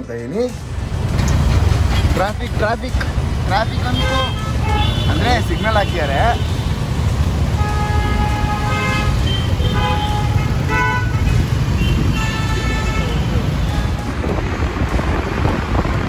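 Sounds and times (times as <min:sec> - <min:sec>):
idling engines rumble: 0:00.0 - 0:16.0
vehicle horns honking: 0:03.6 - 0:06.8, 0:07.5 - 0:14.4.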